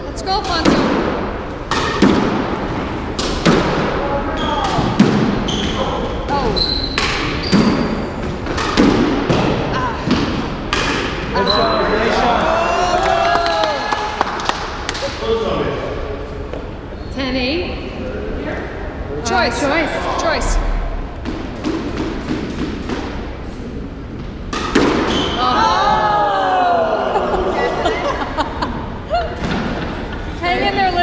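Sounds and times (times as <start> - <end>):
squash ball hitting rackets and walls: 0.3 - 12.3, 21.1 - 25.6, 29.3 - 29.9
shoes squeaking on hardwood floor: 5.4 - 8.0.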